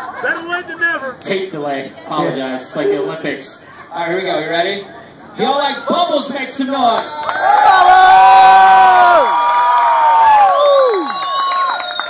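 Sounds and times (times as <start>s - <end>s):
crowd cheering: 6.9s - 12.0s
long held whoops: 7.4s - 12.0s.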